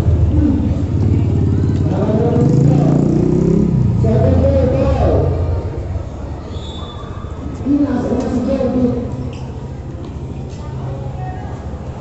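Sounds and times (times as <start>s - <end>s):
motor engine running: 0.0s - 6.1s
people's voices: 0.0s - 12.0s.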